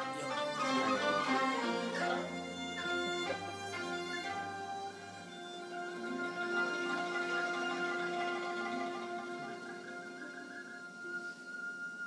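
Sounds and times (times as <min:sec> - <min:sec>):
bowed fiddles playing melody: 0:00.0 - 0:12.0
low musical accompaniment: 0:00.0 - 0:12.0.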